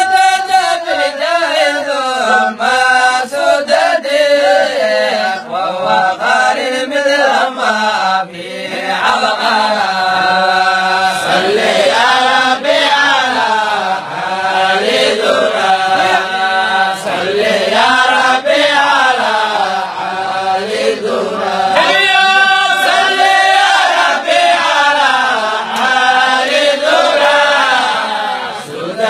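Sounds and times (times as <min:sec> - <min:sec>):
man chanting recitation: 0:00.0 - 0:29.0.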